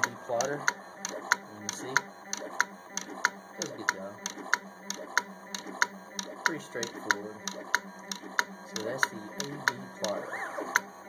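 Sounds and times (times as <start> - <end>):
pen plotter head clicking: 0.0 - 10.9.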